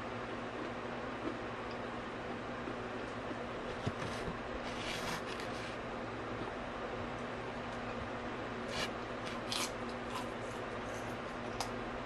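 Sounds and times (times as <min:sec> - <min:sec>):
low steady hum: 0:00.0 - 0:12.0
crunching bite of celery: 0:08.7 - 0:11.7.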